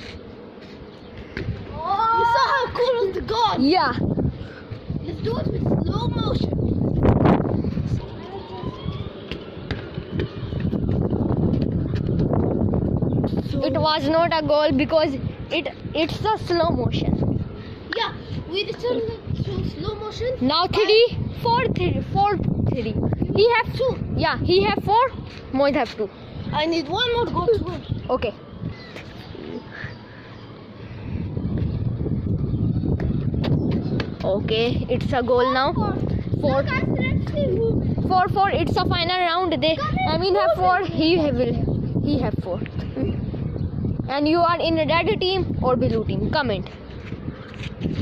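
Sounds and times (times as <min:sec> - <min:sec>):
low rumbling wind: 0:00.0 - 0:48.0.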